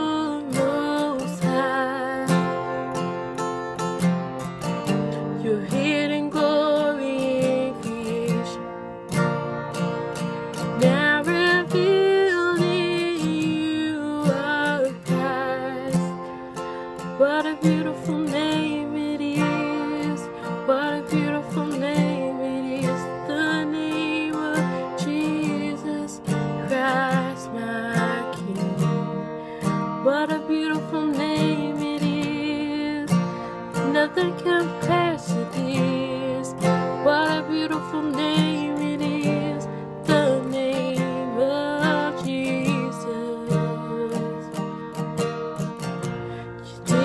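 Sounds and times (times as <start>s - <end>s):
acoustic guitar strumming: 0.0s - 47.0s
woman singing: 0.0s - 47.0s.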